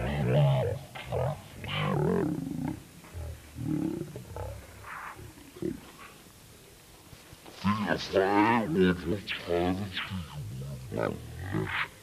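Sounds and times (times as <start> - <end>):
distorted warbling tape playback: 0.0 - 6.3, 7.5 - 12.0.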